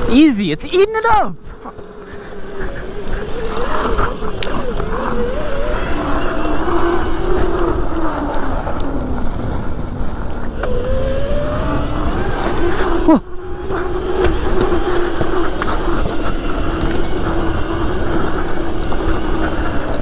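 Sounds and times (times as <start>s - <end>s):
electric motor whining: 0.0s - 20.0s
tyres on dirt: 0.0s - 20.0s
wind rushing: 2.2s - 20.0s.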